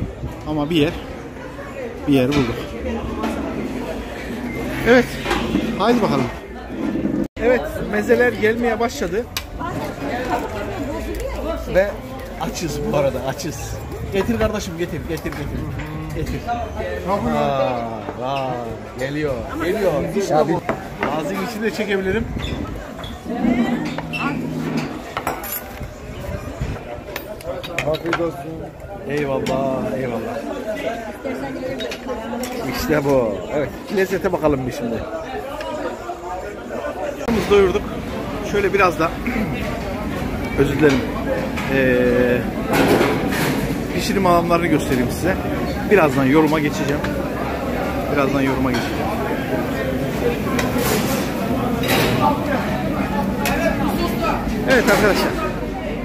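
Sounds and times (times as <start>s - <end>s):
restaurant chatter: 0.0s - 56.0s
plates and cutlery clinking: 22.4s - 25.8s.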